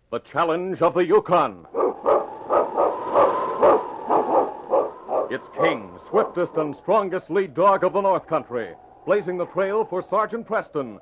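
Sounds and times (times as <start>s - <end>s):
dog barking rapidly: 1.7s - 5.4s.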